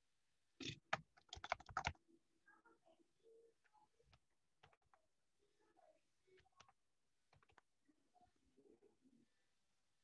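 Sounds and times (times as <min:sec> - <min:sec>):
keyboard keys clicking: 0:00.9 - 0:02.0.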